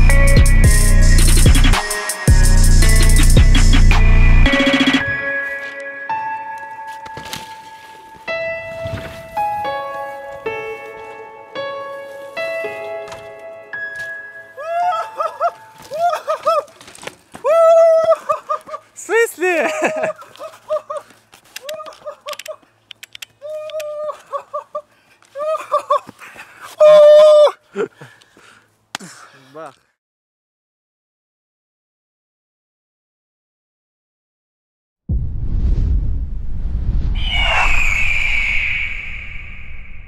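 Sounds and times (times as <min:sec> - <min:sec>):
sharp clicks: 0:21.5 - 0:23.9
low rumble: 0:35.1 - 0:40.0
swish: 0:35.1 - 0:40.0
high whistling tone: 0:37.0 - 0:40.0.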